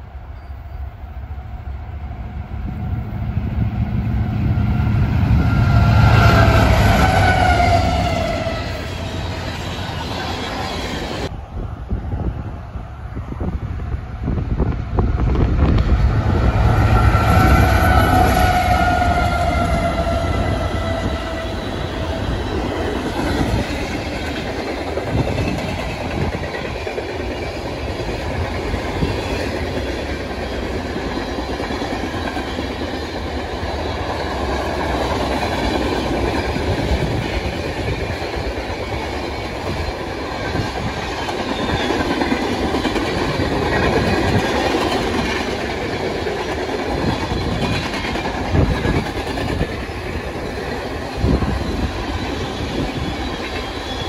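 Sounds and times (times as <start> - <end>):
train wheels on rails: 0.0 - 54.0
train horn: 2.6 - 9.5, 16.2 - 21.9.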